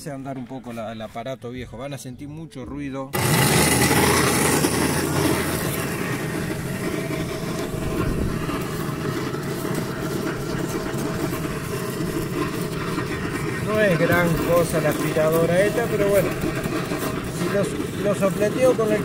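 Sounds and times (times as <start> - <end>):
vacuum cleaner whining: 3.2 - 19.0.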